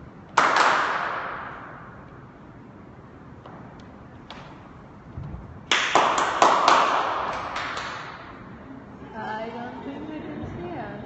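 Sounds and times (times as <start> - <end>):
group of people clapping: 0.3 - 1.6, 5.7 - 8.4.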